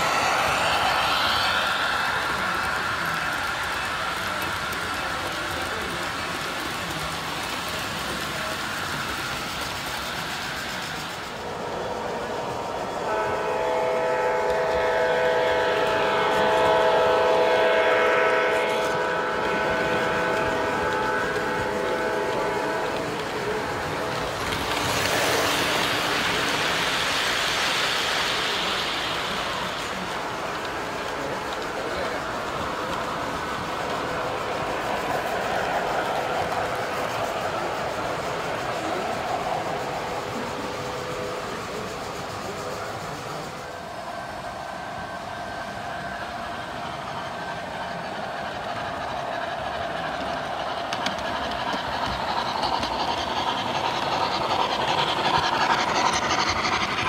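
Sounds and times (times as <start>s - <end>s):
model train wheels rumbling: 0.0s - 57.0s.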